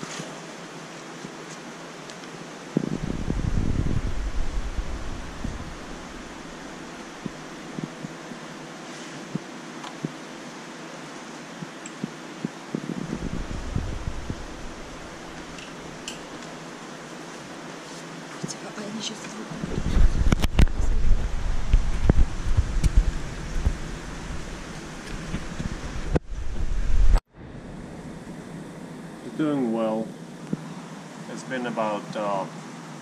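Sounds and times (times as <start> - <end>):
aquarium aeration hissing: 0.0 - 18.3, 19.5 - 33.0
low rumble: 2.8 - 8.1, 12.8 - 16.4, 19.6 - 28.6.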